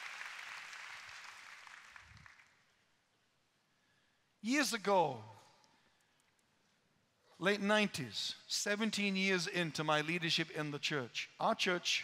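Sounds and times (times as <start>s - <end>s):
large audience applauding: 0.0s - 2.6s.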